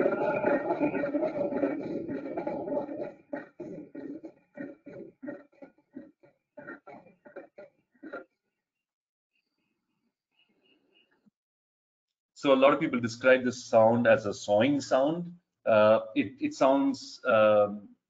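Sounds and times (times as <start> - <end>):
leopard rasping grunts: 0.0 - 8.3.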